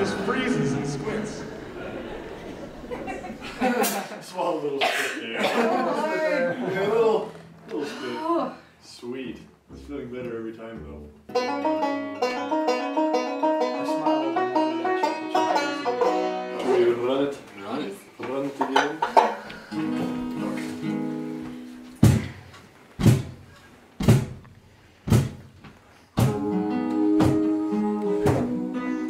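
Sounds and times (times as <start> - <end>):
acoustic guitar: 9.7 - 17.3, 19.5 - 29.0
banjo picking fast rolls: 11.3 - 17.2.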